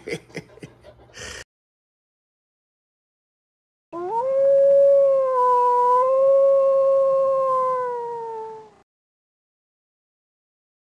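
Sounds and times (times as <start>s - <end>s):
wolf howl: 4.0s - 8.8s.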